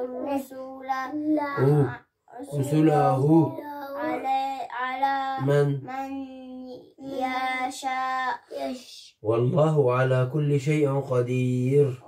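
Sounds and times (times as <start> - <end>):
boy chanting recitation: 0.0 - 9.1.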